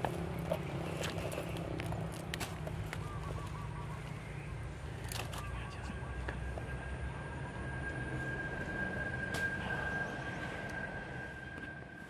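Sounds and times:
steady high-pitched tone: 0:04.1 - 0:12.0.

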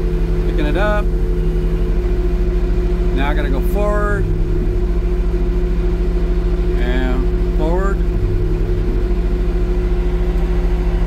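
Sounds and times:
forklift engine running: 0:00.0 - 0:11.0
steady whine: 0:00.0 - 0:11.0.

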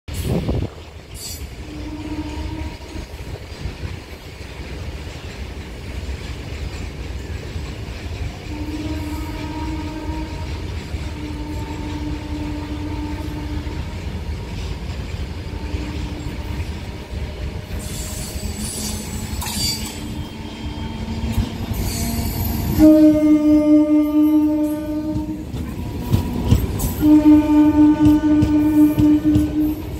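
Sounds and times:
train rumbling: 0:00.1 - 0:29.9
train horn blasts: 0:01.6 - 0:03.4, 0:08.4 - 0:14.6, 0:15.3 - 0:25.8, 0:26.4 - 0:29.9.

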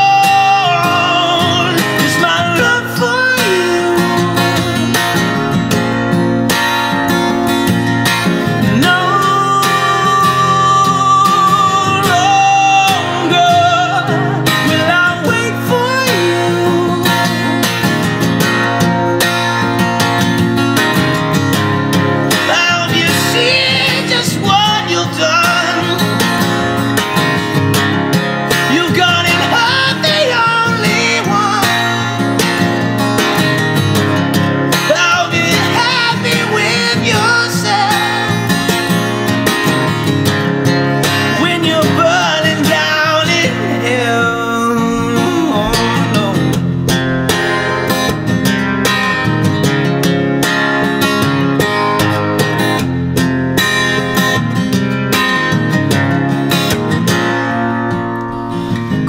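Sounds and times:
acoustic guitar strummed and picked: 0:00.0 - 0:59.0.

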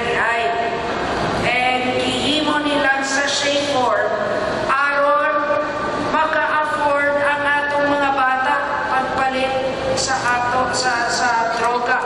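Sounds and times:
woman speaking over loudspeakers: 0:00.0 - 0:00.8, 0:01.4 - 0:12.0.

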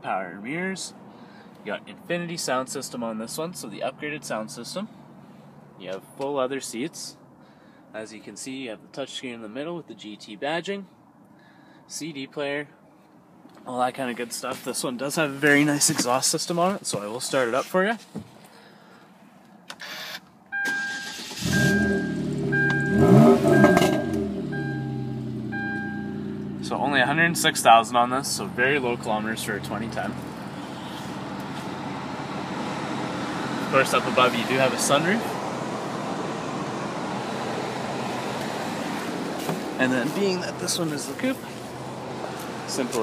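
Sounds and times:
warning chime beeping: 0:20.6 - 0:26.3
car engine revving and idling: 0:21.0 - 0:43.0.

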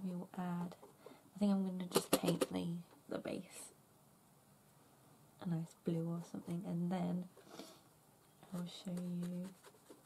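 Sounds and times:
woman speaking quietly: 0:08.4 - 0:09.6.

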